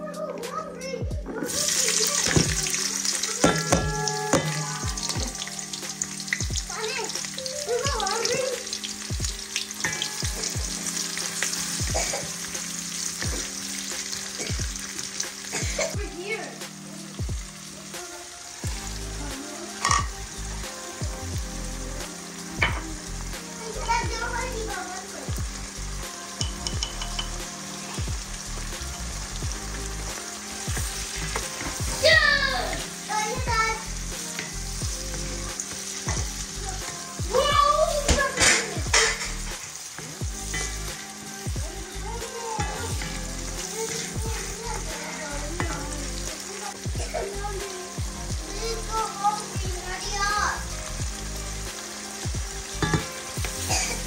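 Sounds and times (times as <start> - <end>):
onion sizzling in oil: 1.4 - 54.0
utensils clicking against pan: 9.6 - 10.6, 26.4 - 27.4, 38.1 - 40.8.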